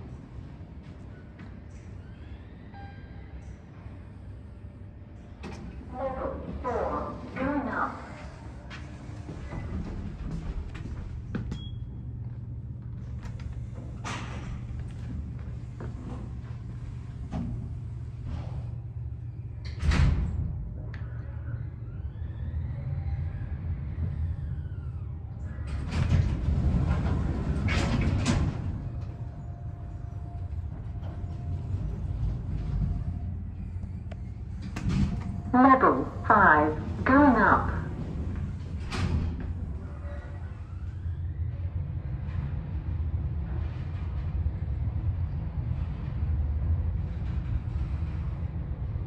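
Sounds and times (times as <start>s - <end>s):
lift motor hum: 0.0s - 49.0s
lift doors clunking and rattling: 5.3s - 20.9s, 21.7s - 49.0s.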